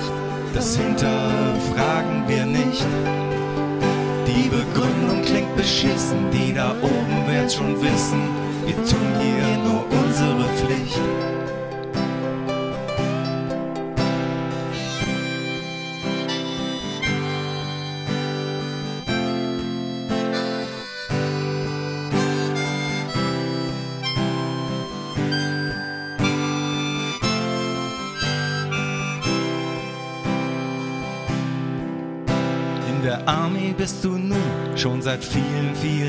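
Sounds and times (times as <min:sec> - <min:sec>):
harmonica melody: 0:00.0 - 0:33.2
strummed acoustic guitars: 0:00.0 - 0:36.0.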